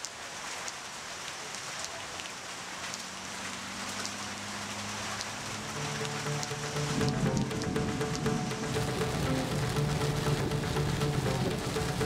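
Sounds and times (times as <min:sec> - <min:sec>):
drip ticks: 0:00.0 - 0:12.0
steady rain falling: 0:00.0 - 0:12.0
low sustained music tones: 0:04.4 - 0:12.0
soft musical notes: 0:05.5 - 0:12.0.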